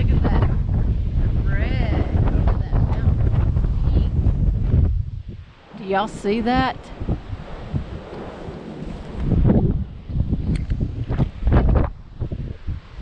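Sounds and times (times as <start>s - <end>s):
gusty wind on microphone: 0.0s - 13.0s.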